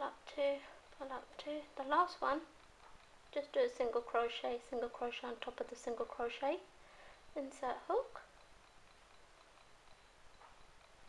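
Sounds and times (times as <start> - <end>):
faint room hiss: 0.0 - 11.0
soft ticks: 0.1 - 11.0.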